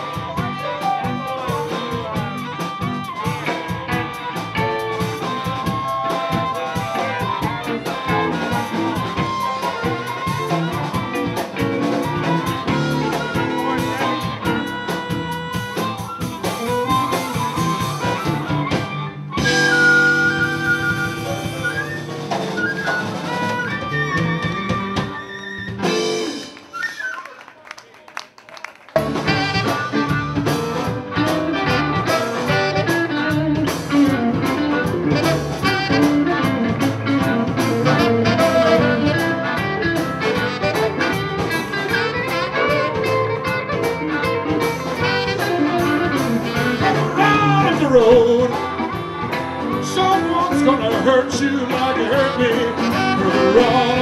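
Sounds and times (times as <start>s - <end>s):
blues shuffle band playing: 0.0s - 54.0s.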